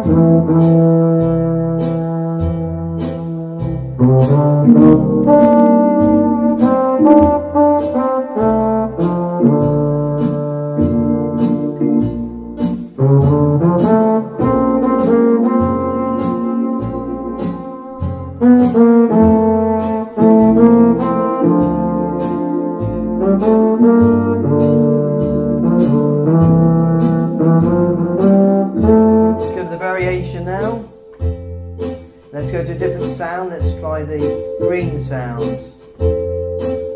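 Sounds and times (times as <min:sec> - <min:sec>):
bass line: 0:00.0 - 0:36.9
drum pattern: 0:00.0 - 0:36.9
organ melody: 0:00.0 - 0:36.9.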